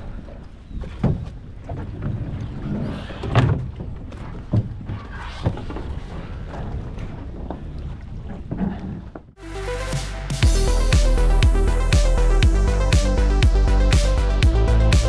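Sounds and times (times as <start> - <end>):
low rumble: 9.6 - 15.0.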